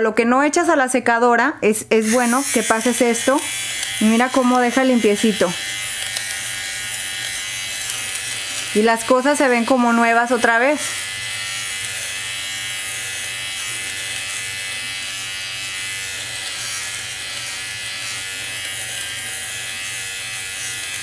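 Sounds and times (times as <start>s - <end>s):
electric lint remover buzzing: 2.0s - 21.0s.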